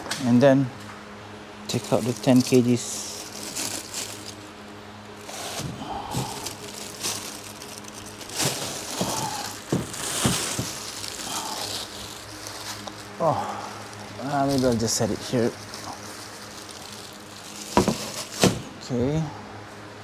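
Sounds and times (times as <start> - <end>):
steady low hum: 0.0 - 20.0
plastic wrapping rustling: 1.7 - 18.7.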